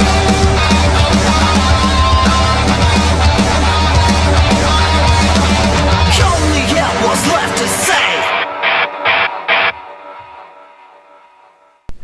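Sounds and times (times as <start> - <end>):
rock chord ringing out: 0.0 - 10.2.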